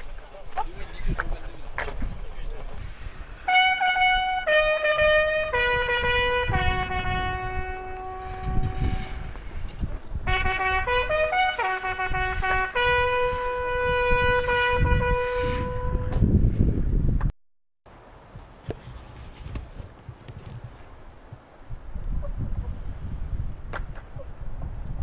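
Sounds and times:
bugle call: 3.5 - 9.4, 10.3 - 16.2.

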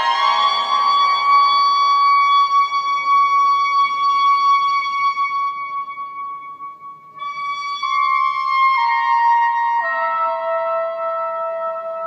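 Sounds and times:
soprano saxophone long high note: 0.0 - 2.1.

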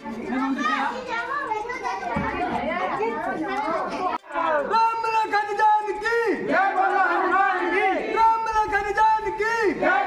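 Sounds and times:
overlapping chatter of voices: 0.0 - 10.0.

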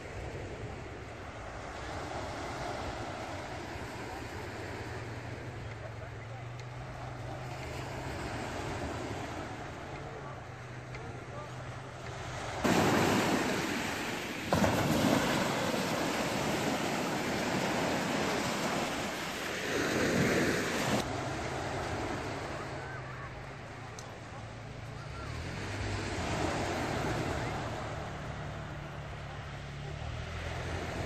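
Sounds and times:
small waves breaking on shore: 0.0 - 31.0.

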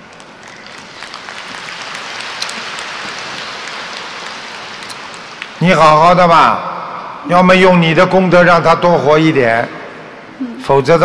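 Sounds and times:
audience applauding: 0.0 - 6.1.

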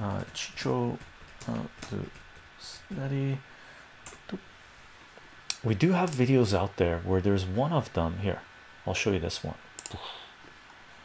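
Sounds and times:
faint clicks: 9.8 - 10.0.

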